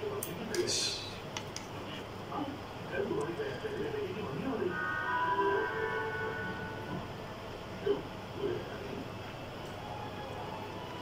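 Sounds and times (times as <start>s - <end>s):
horn blast of several tones: 4.6s - 7.2s.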